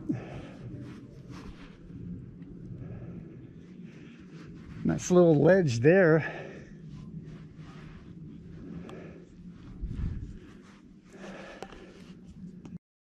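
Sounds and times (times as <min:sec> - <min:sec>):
faint breathing: 0:00.0 - 0:04.9, 0:06.2 - 0:12.7.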